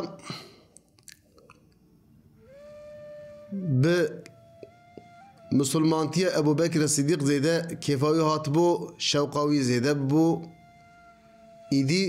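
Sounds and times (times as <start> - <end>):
faint mouth clicks: 0.7 - 1.8.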